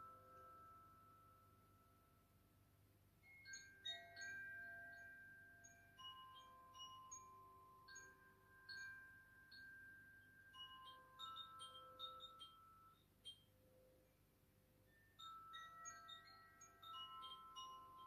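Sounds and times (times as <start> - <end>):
hanging chimes ringing: 3.5 - 13.4, 15.2 - 18.0.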